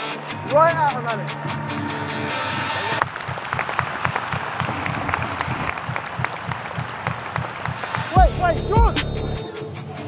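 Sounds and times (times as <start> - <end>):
stadium crowd applauding: 2.9 - 9.4.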